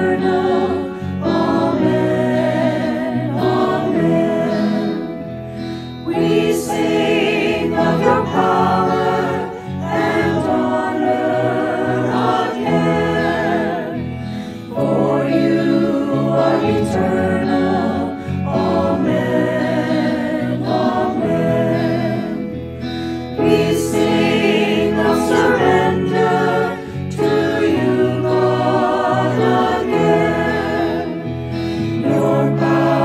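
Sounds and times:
choir singing a hymn: 0.0s - 33.0s.

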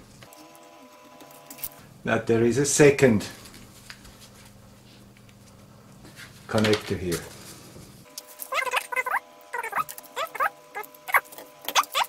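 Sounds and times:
steady multi-tone hum: 0.0s - 12.0s
high-pitched squeaky chirps: 8.5s - 12.0s.

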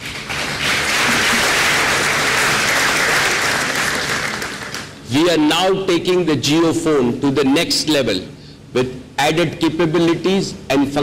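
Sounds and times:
audience applauding: 0.0s - 5.0s.

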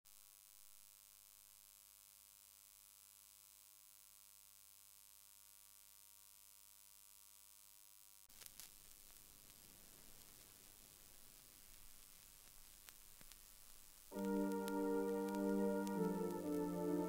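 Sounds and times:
faint electrical hum with hiss: 0.1s - 17.0s.

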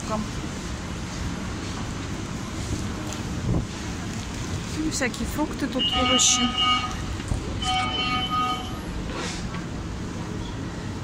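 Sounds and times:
background hubbub: 0.0s - 11.0s
electronic alarm tone: 7.6s - 8.8s.

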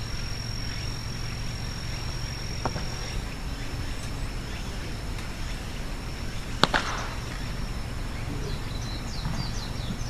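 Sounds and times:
low rumble: 0.0s - 10.0s
steady high-pitched tone: 0.0s - 10.0s.

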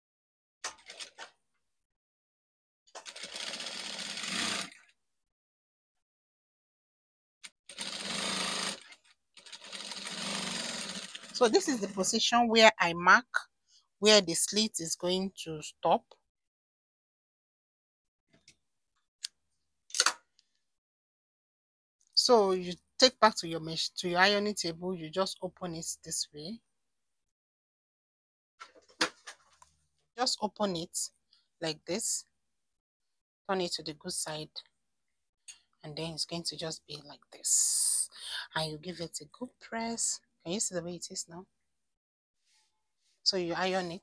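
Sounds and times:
sewing machine stitching: 2.9s - 4.9s, 7.7s - 11.5s.

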